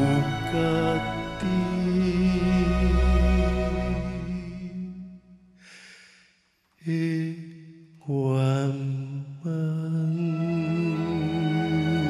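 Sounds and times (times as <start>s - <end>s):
man singing a ballad: 0.0s - 6.0s, 6.8s - 12.0s.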